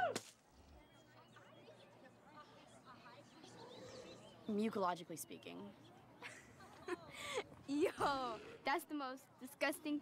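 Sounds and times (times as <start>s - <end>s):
soft bird chirps: 0.6s - 6.2s.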